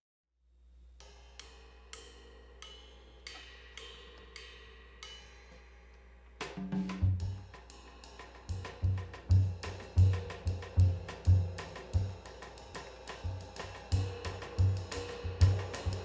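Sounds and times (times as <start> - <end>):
light cymbal strokes: 0.6 - 16.0.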